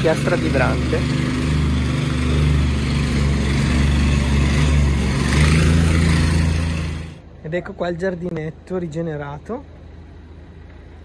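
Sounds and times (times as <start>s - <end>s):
vibrating plate compactor running: 0.0s - 7.2s.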